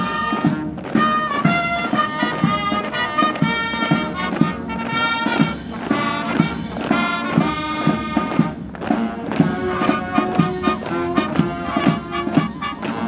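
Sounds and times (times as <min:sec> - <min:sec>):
brass band playing a march: 0:00.0 - 0:13.0.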